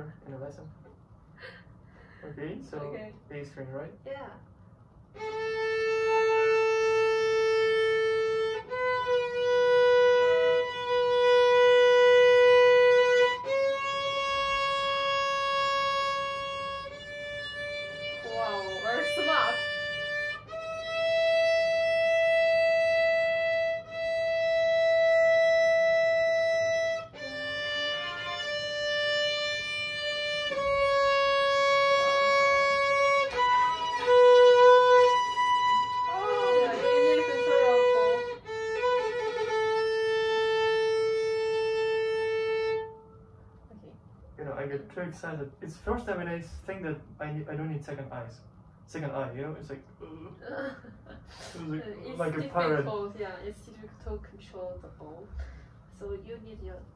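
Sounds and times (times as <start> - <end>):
violin long slow notes: 5.2 - 43.2.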